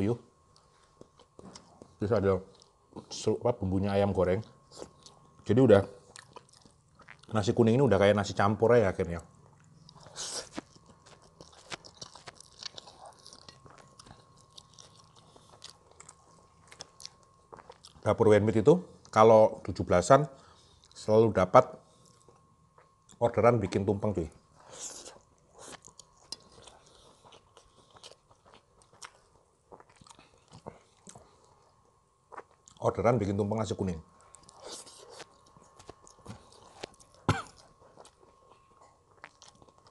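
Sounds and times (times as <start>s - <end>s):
person chewing food: 0.4s - 3.2s, 4.4s - 5.4s, 6.0s - 7.4s, 9.4s - 18.1s, 21.9s - 23.2s, 24.5s - 32.9s, 34.1s - 39.9s.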